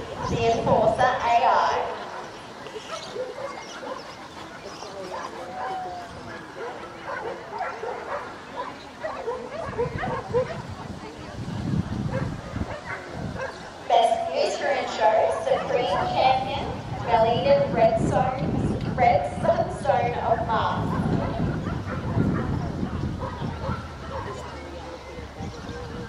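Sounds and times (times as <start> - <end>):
dogs barking and yipping: 0.0 - 0.8, 1.8 - 11.2, 12.0 - 17.0, 20.7 - 26.0
people talking: 0.0 - 2.0, 13.9 - 21.6.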